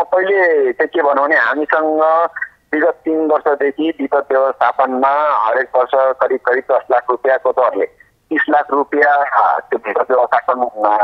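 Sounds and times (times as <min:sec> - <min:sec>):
person talking over telephone: 0:00.0 - 0:11.0.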